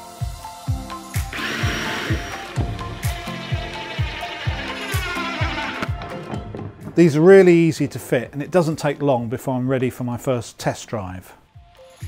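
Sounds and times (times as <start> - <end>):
background music with steady beat: 0.0 - 9.4, 10.8 - 12.0
cordless drill drilling into wood: 1.3 - 5.9.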